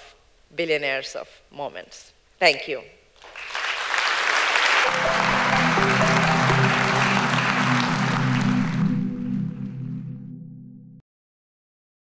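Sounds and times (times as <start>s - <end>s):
audience applauding: 3.2s - 9.4s
music with low sustained notes: 4.8s - 11.0s.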